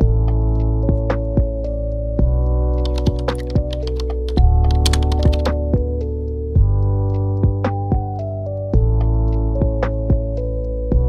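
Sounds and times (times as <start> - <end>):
background music: 0.0 - 11.0
keyboard typing clicks: 2.8 - 5.6.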